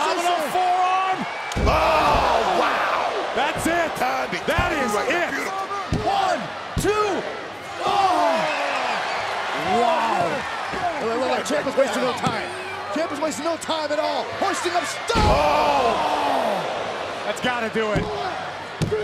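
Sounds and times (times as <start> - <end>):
arena crowd yelling: 0.0 - 19.0
wrestlers slamming onto ring canvas: 1.5 - 2.6, 3.4 - 5.0, 5.8 - 6.9, 15.1 - 15.9.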